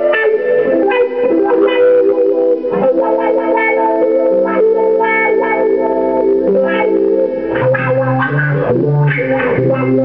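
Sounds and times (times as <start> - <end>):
electric guitar chords through wah pedal: 0.0 - 10.0.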